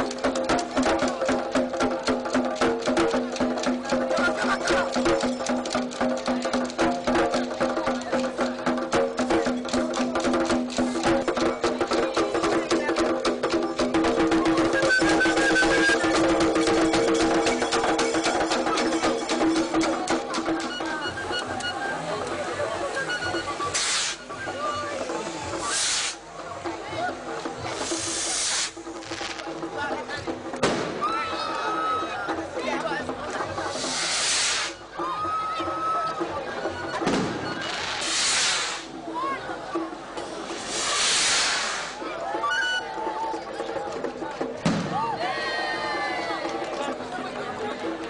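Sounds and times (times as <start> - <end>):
fast traditional drumming: 0.0 - 48.0
short bursts of hissing: 23.7 - 24.2, 25.3 - 26.2, 27.8 - 28.8, 33.7 - 34.8, 37.8 - 38.9, 40.6 - 42.0.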